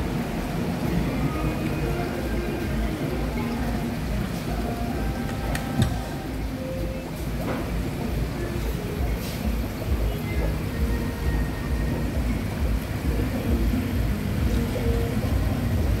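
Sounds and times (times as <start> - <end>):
distant chatter: 0.0 - 16.0
faint background music: 0.0 - 16.0
low rumble of traffic: 0.0 - 16.0.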